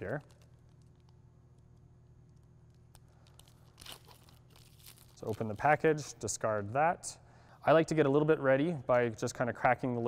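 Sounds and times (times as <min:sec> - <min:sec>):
plastic wrapper crinkling and tearing: 0:03.2 - 0:05.8.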